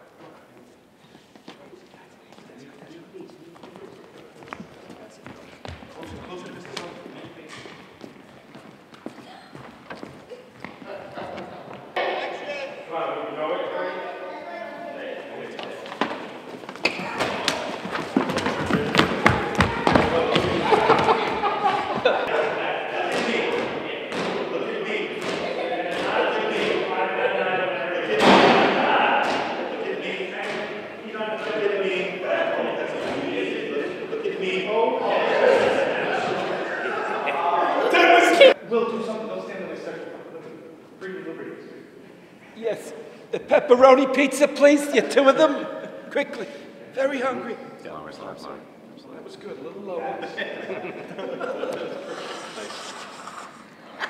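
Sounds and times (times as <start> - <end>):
footsteps on wooden floor: 3.6 - 12.0, 15.8 - 22.2
people shouting and yelling: 16.8 - 30.4, 31.6 - 38.6.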